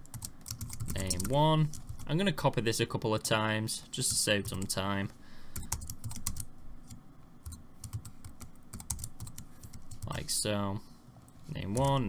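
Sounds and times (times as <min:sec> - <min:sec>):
keyboard keys clicking: 0:07.4 - 0:09.8.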